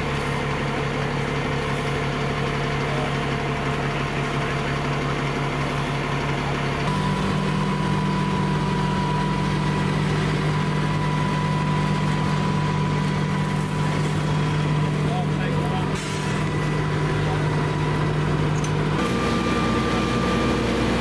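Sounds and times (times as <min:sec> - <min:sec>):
diesel engine idling: 0:00.0 - 0:21.0
steady high whine: 0:06.8 - 0:21.0.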